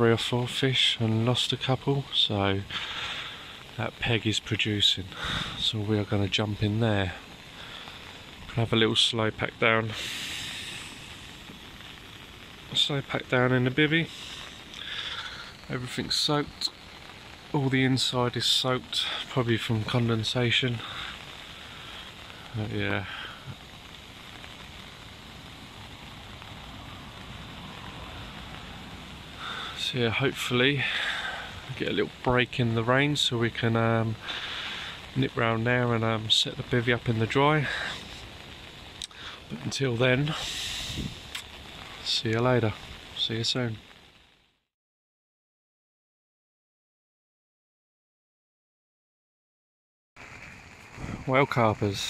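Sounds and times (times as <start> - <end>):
steady rain: 0.0 - 44.6, 50.2 - 52.0
wind noise: 40.3 - 41.4, 50.8 - 52.0.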